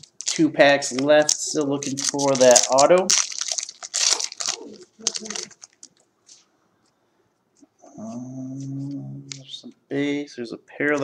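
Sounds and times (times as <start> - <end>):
foil wrapper crinkling and tearing: 0.0 - 6.0.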